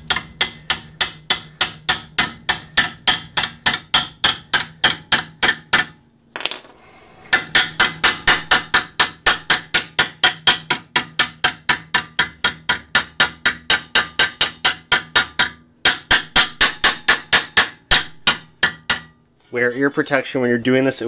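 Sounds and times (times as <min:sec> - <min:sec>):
hammer tapping sheet metal: 0:00.0 - 0:06.6, 0:07.2 - 0:19.2.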